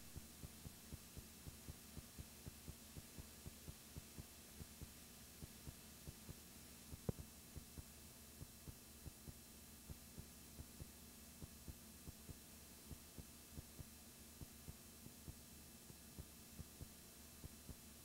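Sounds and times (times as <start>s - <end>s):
low steady hum: 0.0s - 18.0s
heartbeat thumps: 0.1s - 17.8s.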